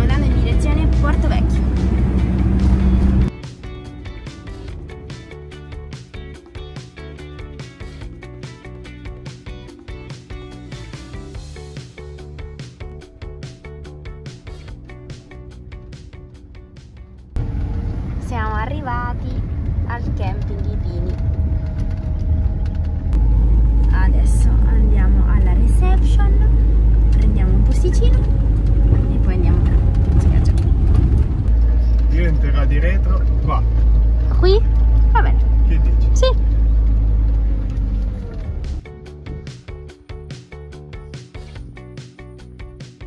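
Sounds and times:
engine and road rumble: 0:00.0 - 0:43.0.

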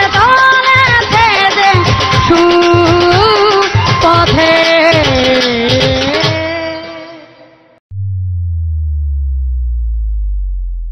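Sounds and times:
deep synthesized bass tone: 0:07.9 - 0:10.9.

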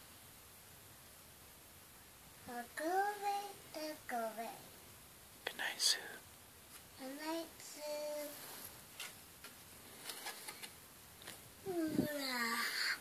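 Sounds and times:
young child sing-song voice: 0:02.4 - 0:04.8, 0:07.0 - 0:08.7, 0:11.6 - 0:13.0
breathy hiss: 0:11.6 - 0:13.0.

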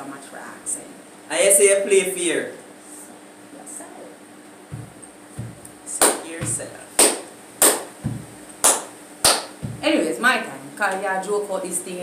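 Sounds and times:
hand claps: 0:04.7 - 0:09.9.

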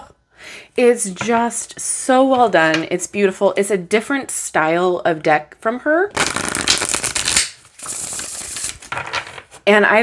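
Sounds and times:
cards riffle shuffled: 0:06.2 - 0:09.6.

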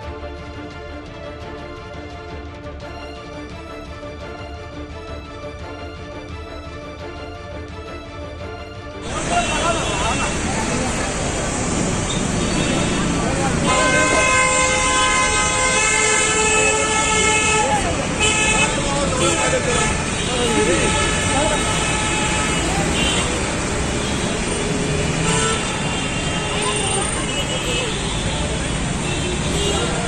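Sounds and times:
traffic noise: 0:08.4 - 0:30.0
vehicle horns honking: 0:09.0 - 0:30.0.

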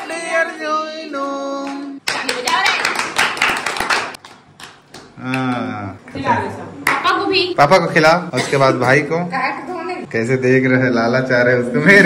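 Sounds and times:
group of people clapping: 0:01.6 - 0:06.2.

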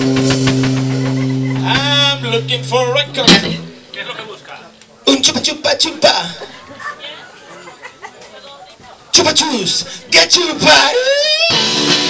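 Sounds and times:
rock band accented hit: 0:00.0 - 0:03.9, 0:11.5 - 0:12.0.

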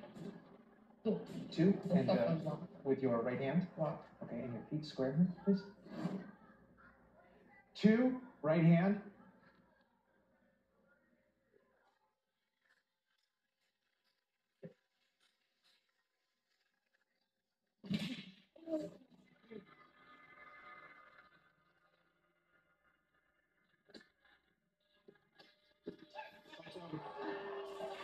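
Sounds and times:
crowd noise: 0:00.0 - 0:09.8, 0:26.3 - 0:28.0.

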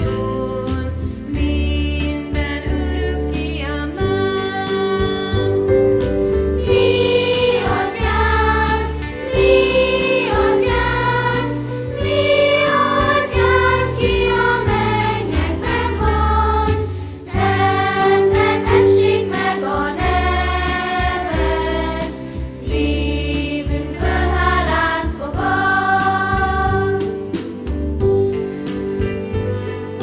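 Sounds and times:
low instrumental accompaniment: 0:00.0 - 0:30.0
children's choir singing: 0:06.6 - 0:27.4.

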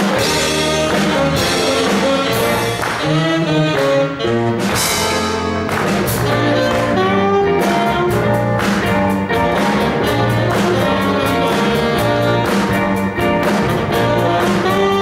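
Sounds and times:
drum kit: 0:00.0 - 0:15.0
electric guitars: 0:00.0 - 0:15.0
keyboard playing: 0:00.0 - 0:15.0
saxophones playing melody: 0:00.0 - 0:15.0.

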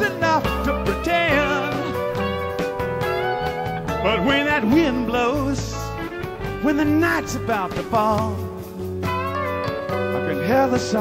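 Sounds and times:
lead guitar bending phrases: 0:00.0 - 0:11.0
live rock band playing: 0:00.0 - 0:11.0.

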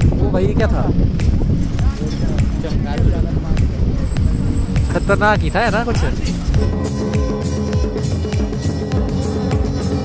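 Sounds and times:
heavy low rumble: 0:00.0 - 0:09.4
people talking: 0:01.7 - 0:04.1, 0:04.8 - 0:06.7.

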